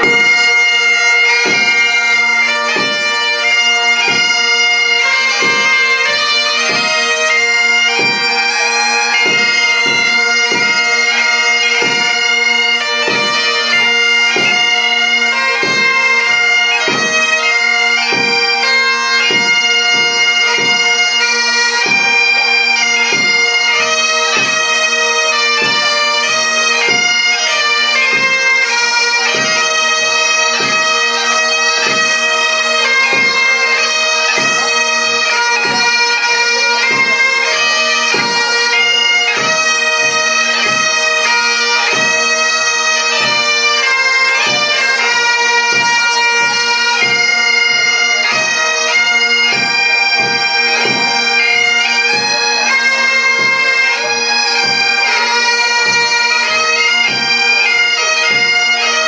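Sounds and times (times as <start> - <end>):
marching drum beat: 0.0 - 53.9, 54.6 - 58.7
bagpipes playing a march: 0.0 - 59.0.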